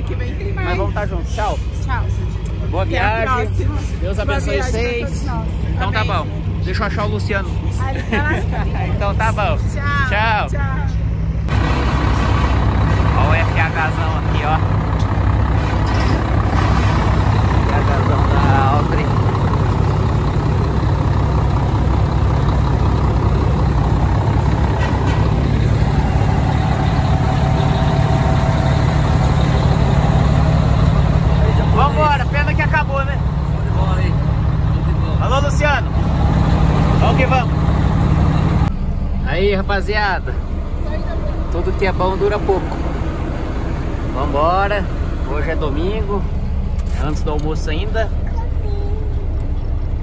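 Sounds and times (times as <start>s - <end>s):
people talking: 0.0s - 11.0s, 13.1s - 14.7s, 17.5s - 19.6s, 31.2s - 35.9s, 37.0s - 37.5s, 39.2s - 42.8s, 44.1s - 46.3s, 46.9s - 49.3s
diesel truck engine idling: 0.0s - 50.0s.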